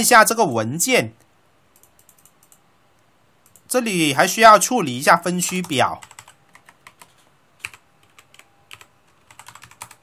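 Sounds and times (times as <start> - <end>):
keyboard typing: 1.8 - 2.6, 3.4 - 3.7, 5.4 - 10.0.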